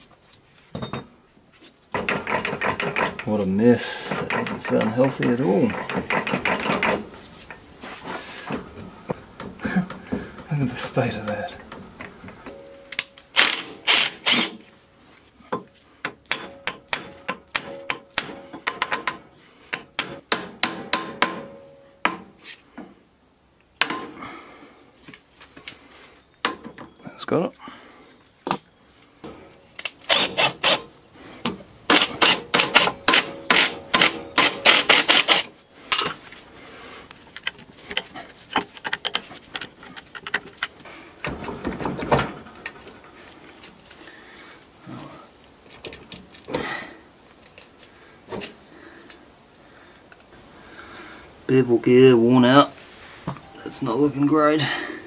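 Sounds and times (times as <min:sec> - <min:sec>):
worn gears clicking and clunking: 0:01.9 - 0:07.6, 0:37.3 - 0:43.2.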